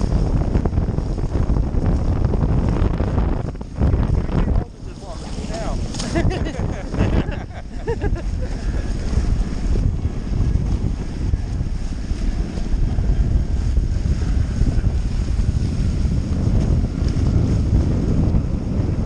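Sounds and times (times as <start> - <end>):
water rushing along hulls: 0.0 - 19.0
wind buffeting microphone: 0.0 - 19.0.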